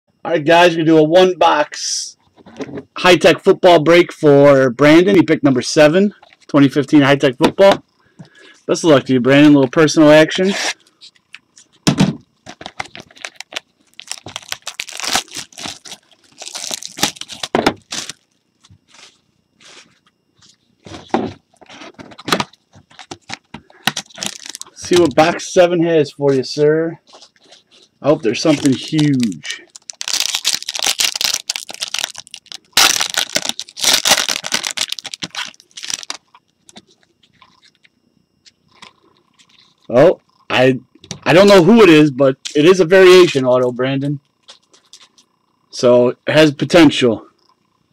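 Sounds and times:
plastic wrap crinkling: 0:12.4 - 0:19.8, 0:21.5 - 0:25.2, 0:27.1 - 0:37.9, 0:44.4 - 0:45.3.

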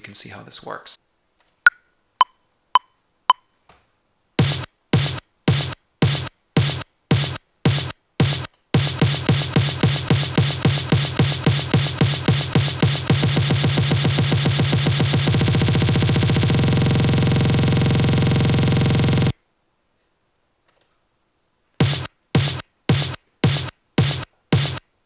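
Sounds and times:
distorted electronic snare roll: 0:04.4 - 0:19.3, 0:21.8 - 0:24.8.

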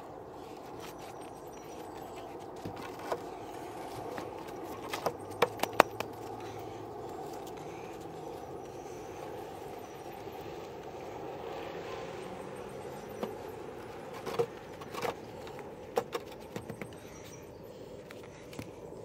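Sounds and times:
outdoor background noise: 0:00.0 - 0:19.0.

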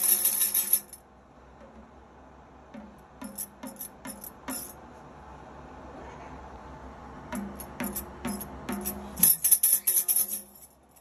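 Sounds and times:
tambourine jingling: 0:00.0 - 0:01.1, 0:02.8 - 0:04.8, 0:07.3 - 0:11.0.

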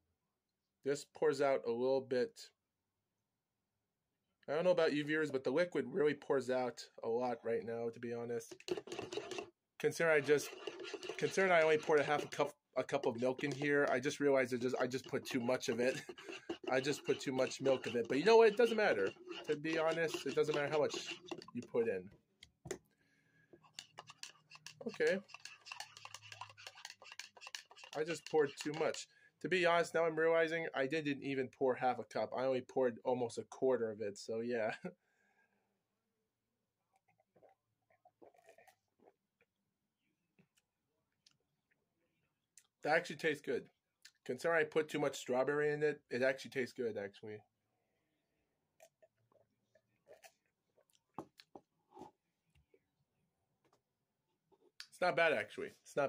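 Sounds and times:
spoon clicking and scraping cup: 0:08.5 - 0:21.8, 0:23.6 - 0:29.0.

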